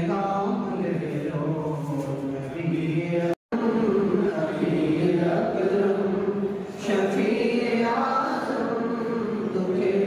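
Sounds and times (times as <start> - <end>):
man chanting into microphone: 0.0 - 10.0.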